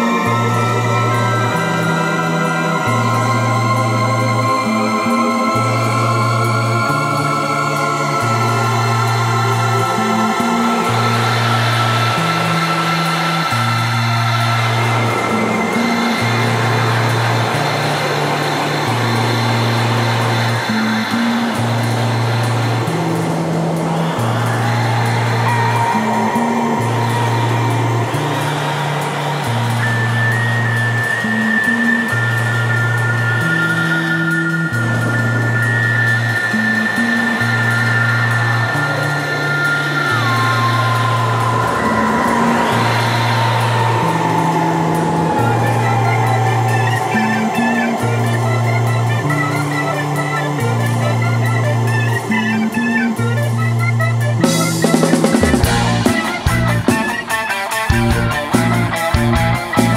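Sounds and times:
long held lead guitar notes: 0.0 - 59.9
rock band playing: 54.2 - 59.9.

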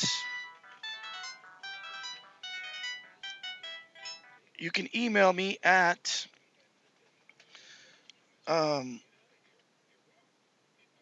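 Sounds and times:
electronic beeping melody: 0.0 - 4.5.

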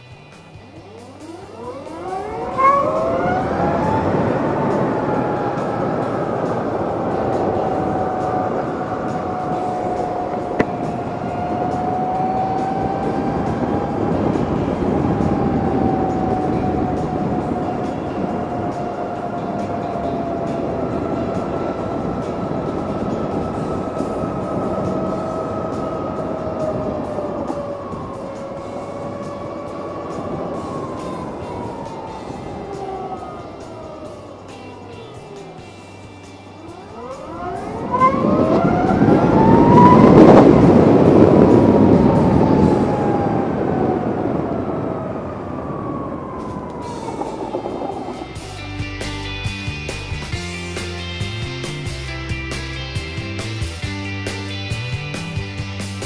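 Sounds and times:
electric motorcycle motor whine: 0.0 - 50.6
wind and road noise: 0.0 - 56.0.

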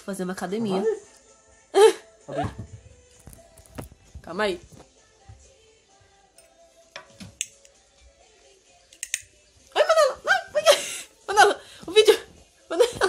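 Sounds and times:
faint background music: 0.0 - 13.0
high-pitched voices laughing: 9.7 - 13.0.

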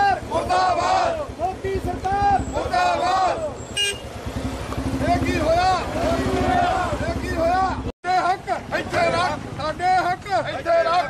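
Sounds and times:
protesters chanting: 0.0 - 11.0
vehicle horn toot: 3.7 - 4.2.

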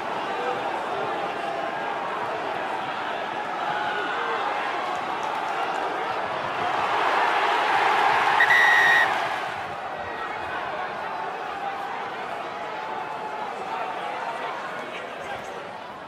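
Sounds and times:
stadium crowd noise: 0.0 - 16.0
referee's whistle blast: 8.4 - 9.2.

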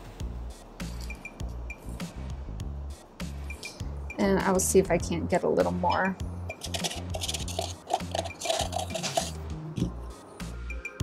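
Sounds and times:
music with steady beat: 0.0 - 4.7, 5.8 - 11.0
spoon scraping plaster in cup: 6.5 - 9.9.

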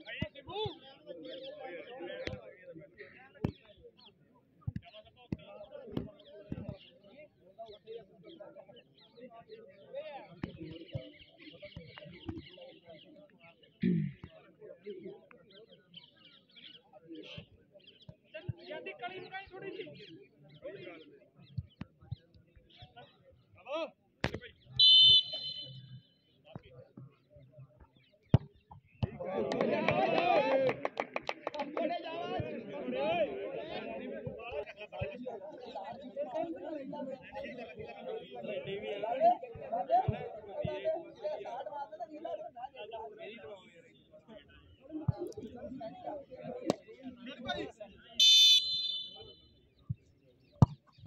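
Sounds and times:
referee's whistle blast: 24.8 - 26.0, 48.2 - 49.4.

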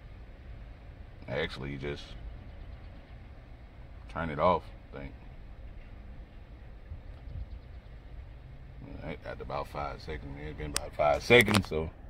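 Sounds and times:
low rumble inside car cabin: 0.0 - 12.0.

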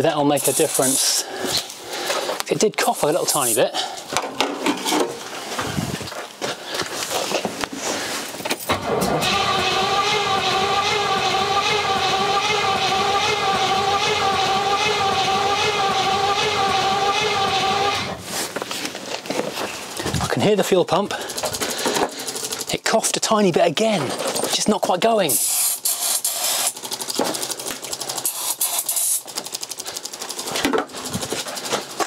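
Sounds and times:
fuel pump whirring: 0.2 - 4.2, 8.7 - 18.8, 19.9 - 22.9, 25.3 - 32.0
starter motor cranking engine: 8.6 - 18.5, 19.9 - 22.9, 25.3 - 32.0
engine coughing: 8.7 - 18.2.

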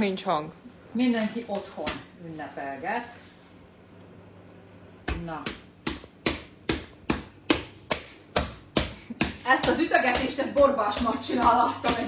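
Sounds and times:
hand slapping dough: 5.1 - 12.0.

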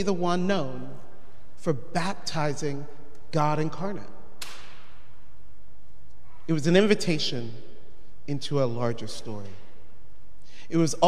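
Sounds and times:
sharp click: 4.4 - 4.9.

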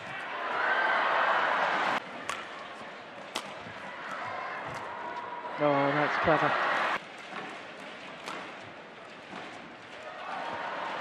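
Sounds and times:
arena crowd noise: 0.0 - 11.0
badminton racket hitting shuttlecock: 8.2 - 8.7.

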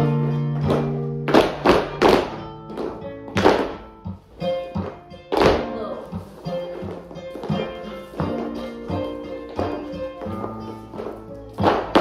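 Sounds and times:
flamenco guitar playing: 0.0 - 12.0.

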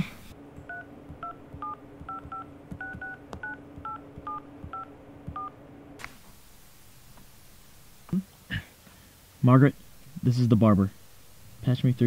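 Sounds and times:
faint steady hum: 0.0 - 12.0
touch-tone keypad beeps: 0.7 - 5.5.

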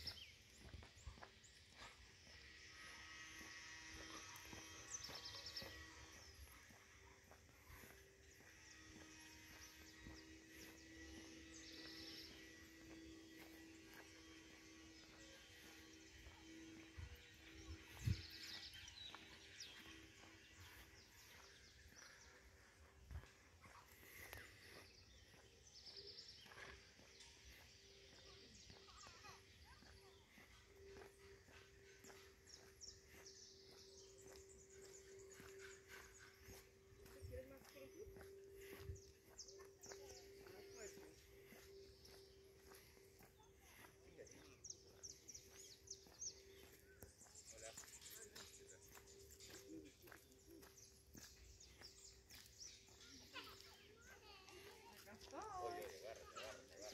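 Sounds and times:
faint footsteps on paving: 0.0 - 56.9.

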